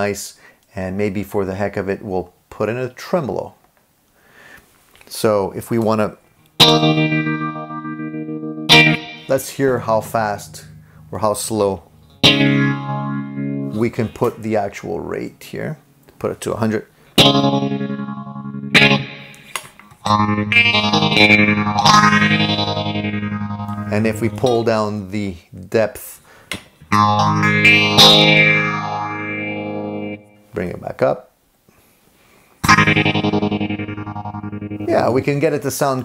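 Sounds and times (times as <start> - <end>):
electric guitar chords with tremolo: 6.6 - 14.7, 17.1 - 24.7, 26.8 - 30.4, 32.6 - 35.2.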